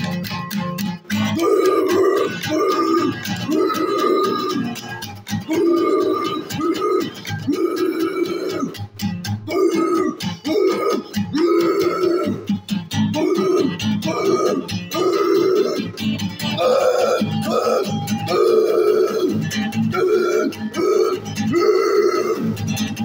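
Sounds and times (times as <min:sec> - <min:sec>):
acoustic guitar strumming: 0:00.0 - 0:23.0
person yelling hoarsely: 0:01.3 - 0:04.8, 0:05.4 - 0:08.8, 0:09.5 - 0:12.5, 0:13.1 - 0:16.0, 0:16.6 - 0:22.6.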